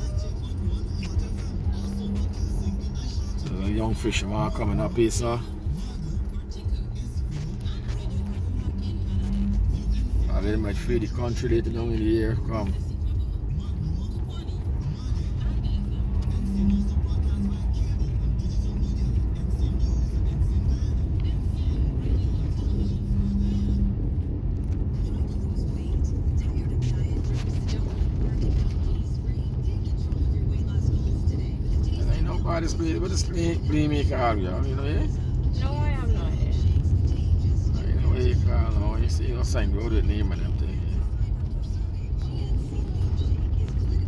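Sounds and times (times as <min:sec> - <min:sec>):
car engine and tyres rumbling: 0:00.0 - 0:44.0.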